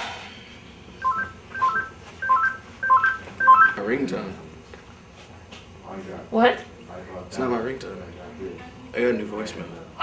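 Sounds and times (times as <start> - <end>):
cell phone ringtone beeping: 1.0 - 3.8.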